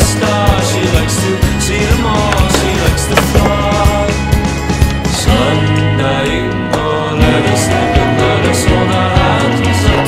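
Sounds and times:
music soundtrack: 0.4 - 10.0
skateboard impact: 1.9 - 4.2
skateboard grinding on metal rail: 2.1 - 4.0.

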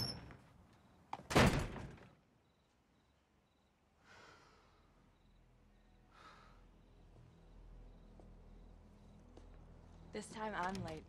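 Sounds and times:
door slamming shut: 1.3 - 2.1.

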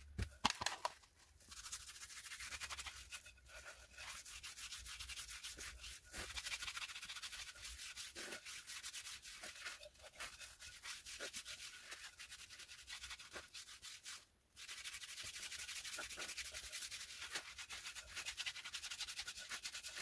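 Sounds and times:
hands rubbing wood: 0.2 - 20.0.

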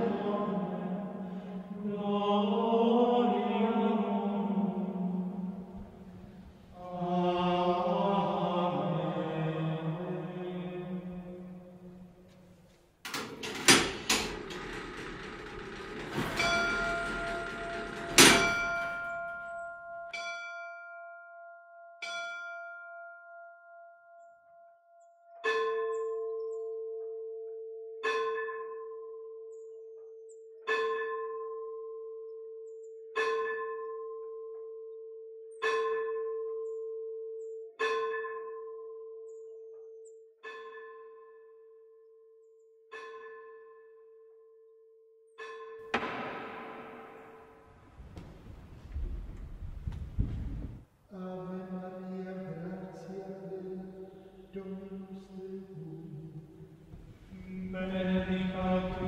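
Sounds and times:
church bell tolling: 2.6 - 6.9, 13.5 - 21.1, 33.2 - 34.9, 37.8 - 39.3, 45.4 - 49.6, 52.4 - 59.0.

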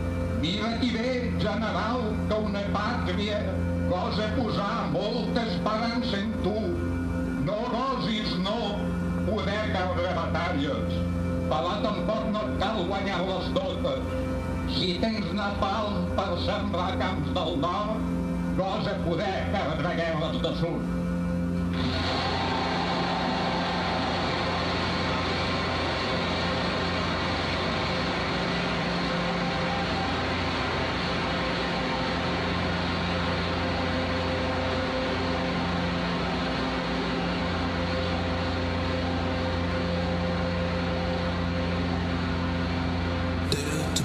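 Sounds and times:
low droning hum: 0.0 - 44.0
steady rush of noise: 21.0 - 44.0.

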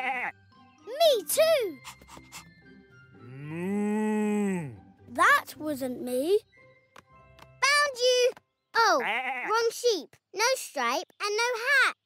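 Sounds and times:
cow mooing: 3.2 - 4.8.

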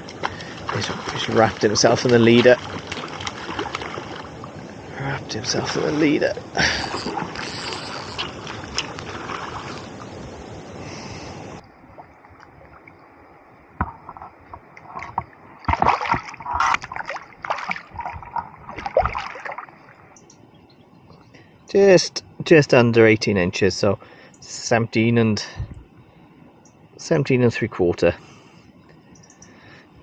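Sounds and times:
fish splashing in net: 0.0 - 4.4, 15.7 - 19.7
rushing stream water: 0.0 - 12.9, 13.8 - 20.1.

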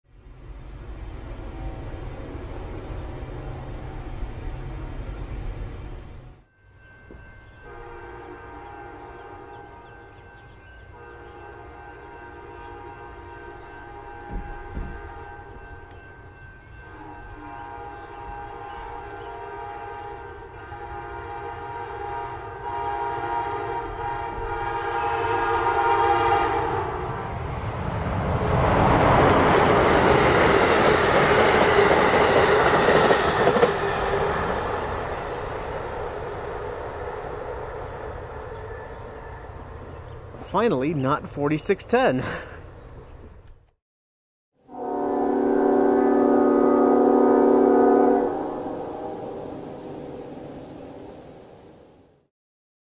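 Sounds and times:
train rumble: 0.3 - 41.6
locomotive air horn blasts: 7.6 - 10.1, 10.9 - 15.9, 16.7 - 27.0, 44.6 - 49.9.

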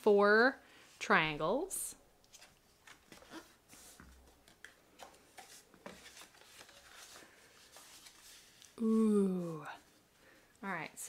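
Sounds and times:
paper rustling and crackling: 2.2 - 8.8.

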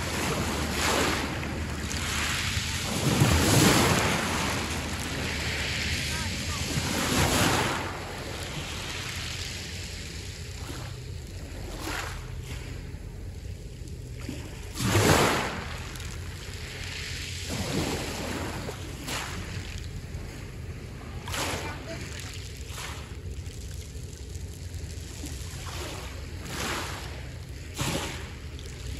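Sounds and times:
waves washing over pebbles: 0.0 - 28.9.

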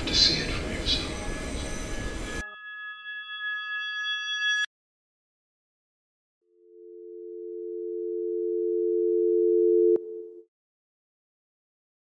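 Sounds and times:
telephone dial tone: 6.8 - 10.4.

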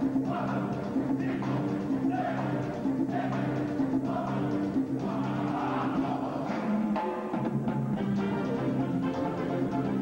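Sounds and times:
wind band playing: 7.8 - 10.0.

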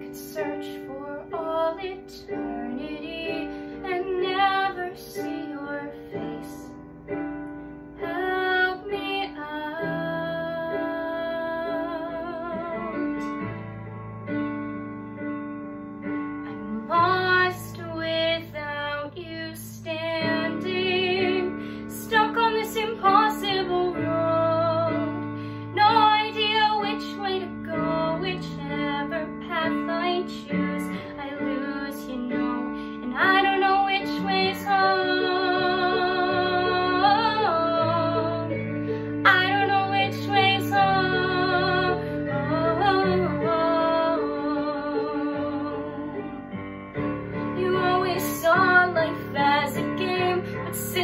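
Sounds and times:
woman singing with vibrato: 0.0 - 6.8, 8.0 - 13.3, 16.5 - 46.3, 47.6 - 51.0.

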